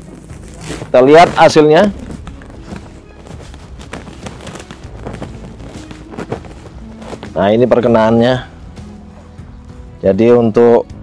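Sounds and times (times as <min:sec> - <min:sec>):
footsteps on grass: 0:00.0 - 0:10.3.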